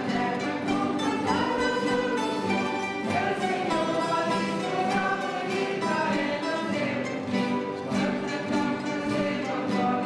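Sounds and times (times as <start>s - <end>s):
acoustic guitar: 0.0s - 10.0s
group singing a hymn: 0.0s - 10.0s.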